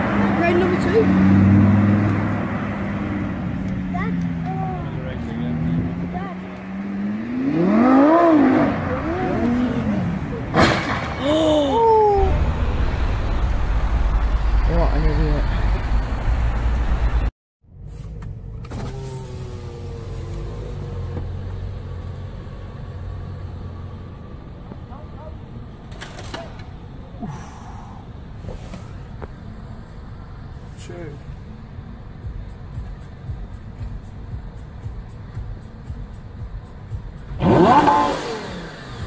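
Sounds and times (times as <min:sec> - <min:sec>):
car exhaust rumble passing: 0:00.0 - 0:18.0.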